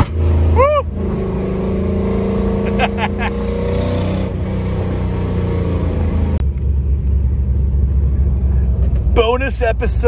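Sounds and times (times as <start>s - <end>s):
car engine from inside cabin: 0.0s - 10.0s.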